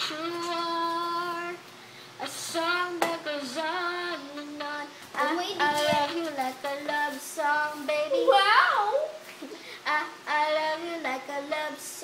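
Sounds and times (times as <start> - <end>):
girl singing: 0.0 - 12.0.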